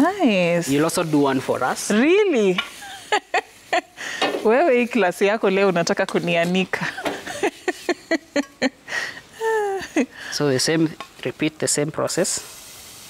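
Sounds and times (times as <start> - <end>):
food sizzling in a pan: 0.0 - 13.0
people talking and laughing: 2.7 - 4.2, 6.7 - 10.3
utensil scraping a pan: 4.1 - 8.6.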